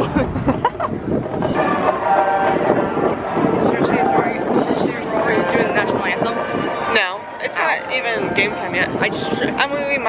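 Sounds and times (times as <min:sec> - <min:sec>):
crowd noise: 0:00.0 - 0:10.0
street noise: 0:00.0 - 0:10.0
steady pitched tone: 0:01.4 - 0:10.0.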